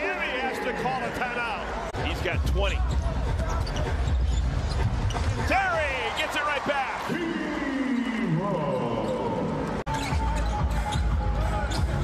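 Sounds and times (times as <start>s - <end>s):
sneaker squeaks: 2.6s - 5.4s, 9.9s - 12.0s.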